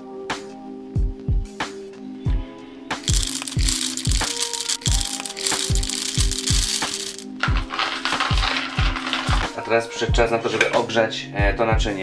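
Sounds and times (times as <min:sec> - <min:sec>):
hand coffee grinder crunching: 0:03.0 - 0:09.5.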